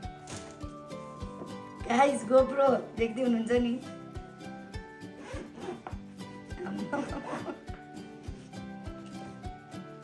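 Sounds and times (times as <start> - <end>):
background music with beat: 0.0 - 2.0, 5.8 - 10.0
zipper on a hard case: 5.1 - 6.0, 6.9 - 7.6.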